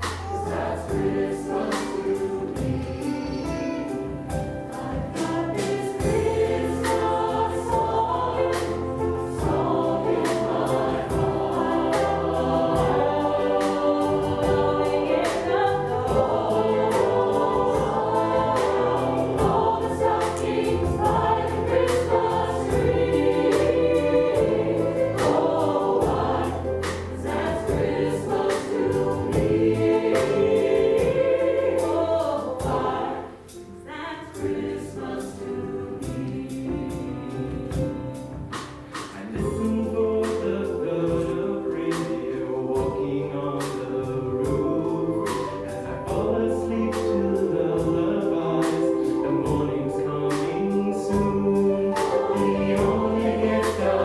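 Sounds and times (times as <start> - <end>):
mixed choir singing chords: 0.0 - 54.0.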